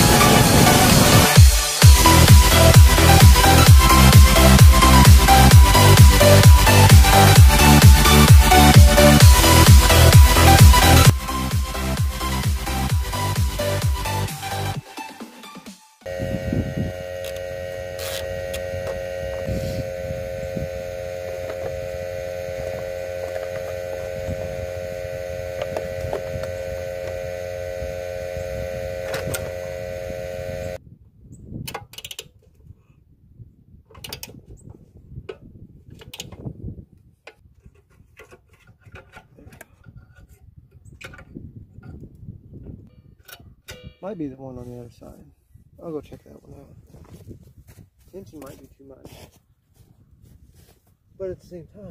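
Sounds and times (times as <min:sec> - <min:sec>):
engine running: 0:00.0 - 0:14.8, 0:16.1 - 0:30.8.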